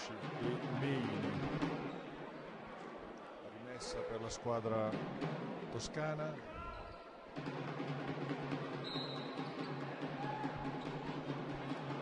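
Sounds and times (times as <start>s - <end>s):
murmur of crowd: 0.0s - 12.0s.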